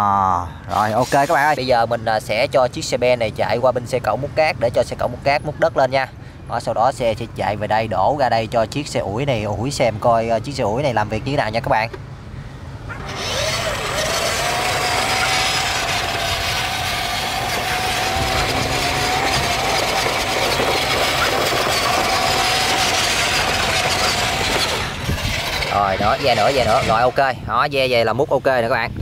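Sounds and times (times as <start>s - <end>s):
toy truck motor whine: 12.9s - 27.2s.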